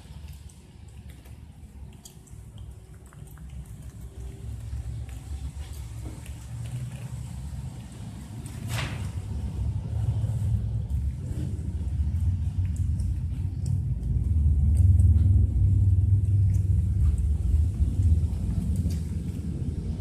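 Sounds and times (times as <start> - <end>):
low uneven rumble: 0.0 - 20.0.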